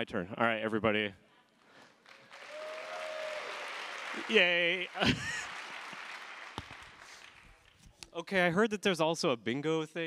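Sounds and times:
audience applauding and cheering: 0:02.0 - 0:07.8
long whoop from crowd: 0:02.4 - 0:03.8.

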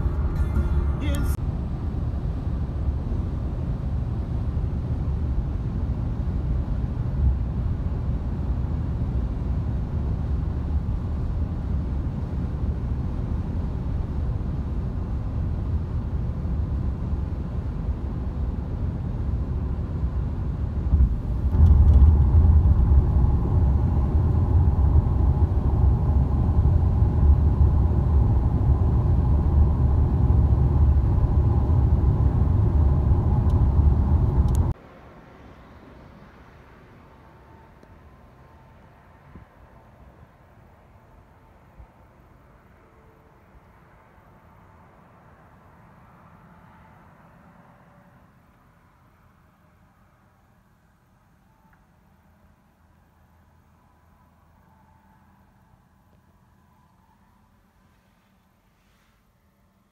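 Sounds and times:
steady higher hum: 0:00.0 - 0:04.7, 0:20.9 - 0:34.8
car cabin road and engine noise: 0:00.0 - 0:51.8.

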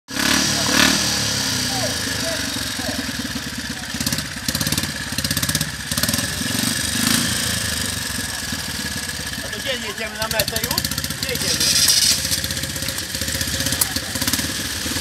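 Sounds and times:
motorcycle engine idling: 0:00.1 - 0:15.0.

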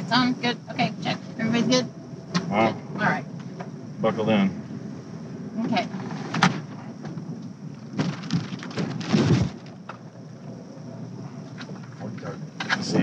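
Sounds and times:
car interior rumble: 0:00.0 - 0:13.0
thumps: 0:07.9 - 0:10.0.

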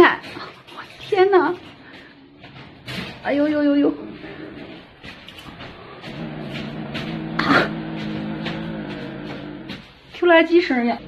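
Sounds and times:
kitten growling low: 0:04.0 - 0:09.9.

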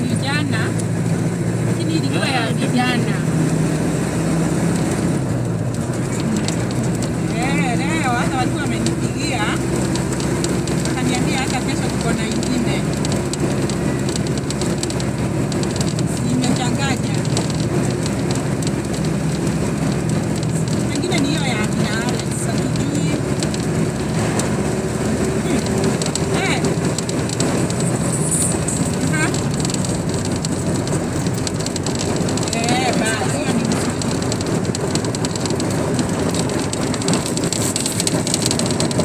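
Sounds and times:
road noise: 0:00.0 - 0:39.0
vehicle engine: 0:00.0 - 0:39.0.

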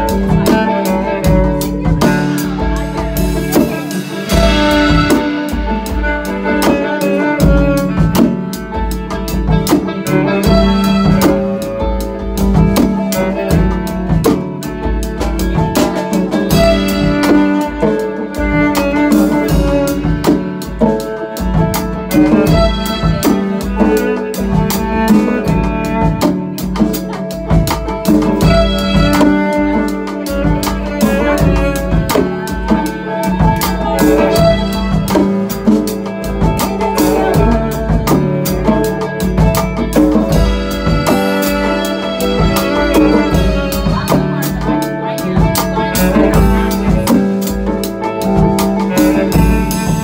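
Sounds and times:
hand drums and percussion: 0:00.0 - 0:50.0.

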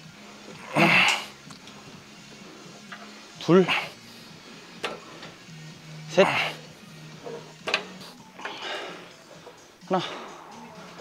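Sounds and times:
person grunting with effort: 0:00.6 - 0:01.3, 0:06.2 - 0:06.6
breathy exhale: 0:08.4 - 0:10.6.

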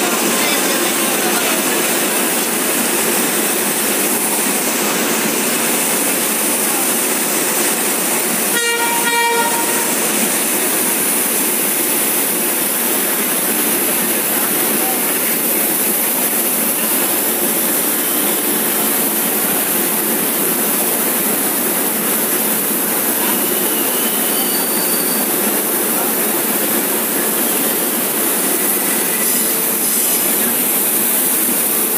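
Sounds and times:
train horn toots: 0:08.5 - 0:10.1.

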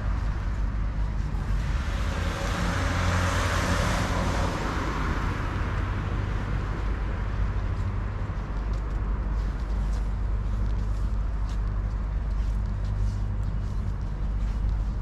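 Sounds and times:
steady low rumble: 0:00.0 - 0:15.0
car passing: 0:01.6 - 0:07.4.

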